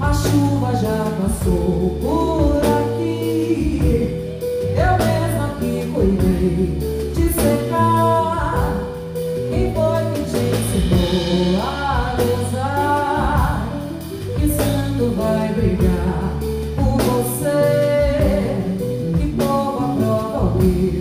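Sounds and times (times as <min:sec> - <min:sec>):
drum kit: 0:00.0 - 0:21.0
woman singing: 0:00.0 - 0:21.0.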